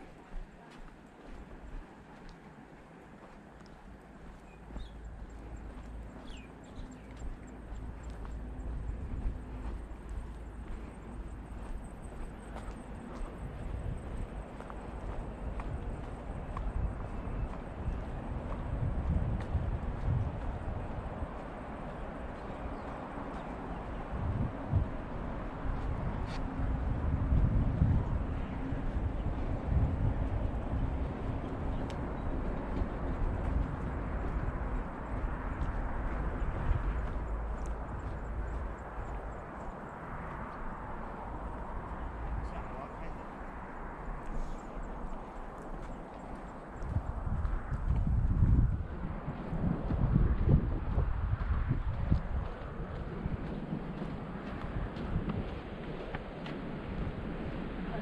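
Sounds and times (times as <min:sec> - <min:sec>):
footsteps on paved path: 0:00.0 - 0:58.0
wind buffeting microphone: 0:00.0 - 0:58.0.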